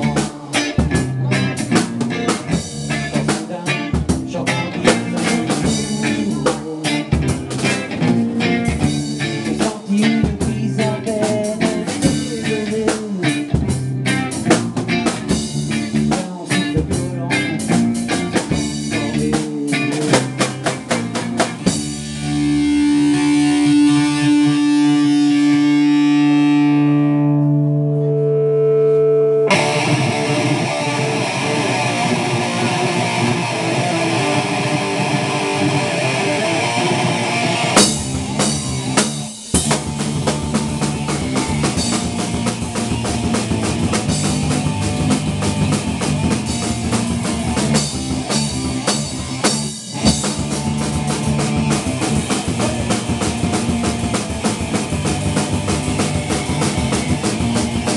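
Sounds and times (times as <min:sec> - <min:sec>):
drum kit: 0:00.0 - 0:26.8, 0:28.9 - 0:57.9
bass guitar: 0:00.0 - 0:57.9
distorted electric guitar: 0:00.0 - 0:57.9.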